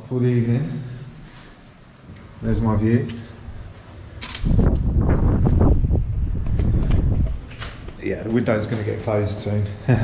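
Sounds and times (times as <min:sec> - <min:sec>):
camera handling rustling rumble: 0:04.2 - 0:08.0.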